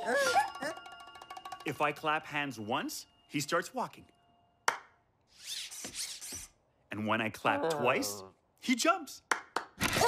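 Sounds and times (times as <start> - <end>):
hand clap: 4.6 - 5.0, 9.2 - 9.8.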